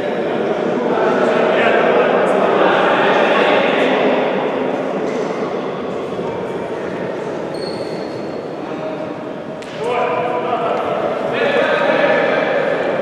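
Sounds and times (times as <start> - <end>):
echoing indistinct voices: 0.0 - 13.0.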